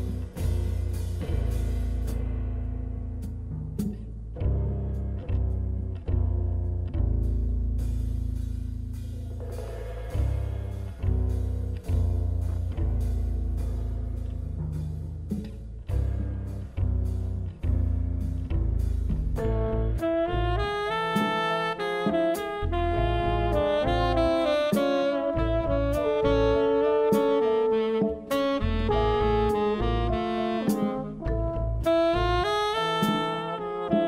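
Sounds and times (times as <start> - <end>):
drum kit cymbals and drums: 0.0 - 4.4, 7.2 - 34.0
upright bass deep notes: 0.0 - 34.0
trombone: 19.3 - 34.0
tenor saxophone: 19.4 - 34.0.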